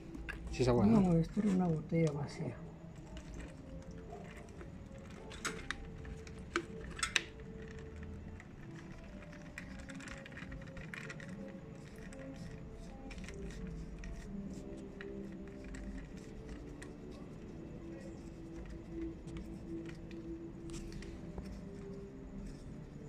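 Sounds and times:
faint music: 0.0s - 23.0s.

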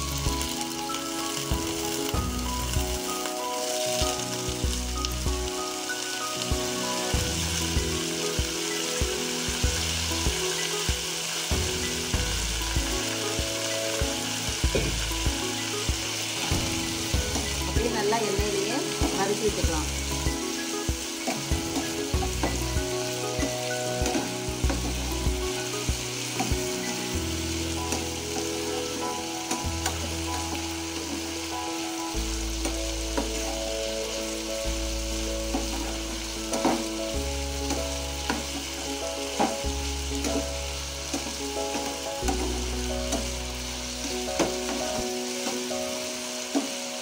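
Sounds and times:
potatoes sizzling in oil: 0.0s - 47.0s.

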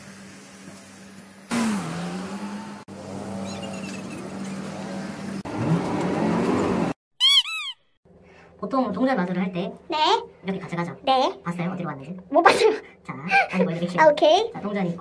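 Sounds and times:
engine rising in pitch: 1.4s - 7.0s
vehicle engines running: 1.5s - 7.0s.

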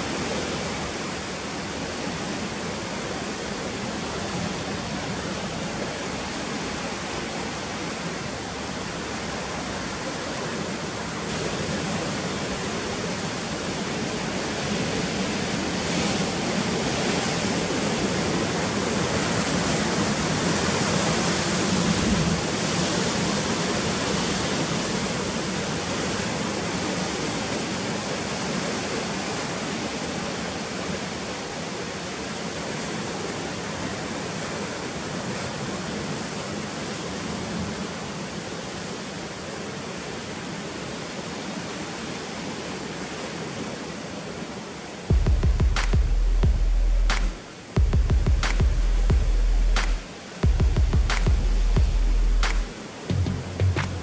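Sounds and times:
heavy surf breaking on rocks: 0.0s - 38.6s.

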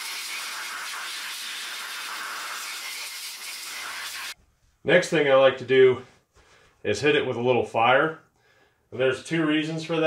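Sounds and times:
compressed-air blow gun hissing: 0.0s - 4.4s.

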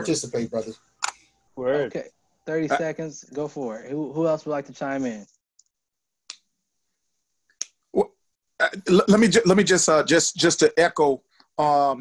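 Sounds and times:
man speaking: 0.0s - 0.8s, 1.7s - 5.2s, 8.0s - 12.0s.

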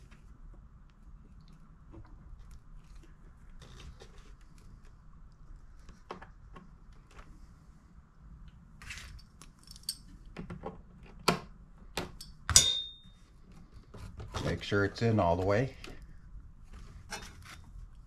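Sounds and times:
metallic clatter with ring: 12.2s - 13.2s.

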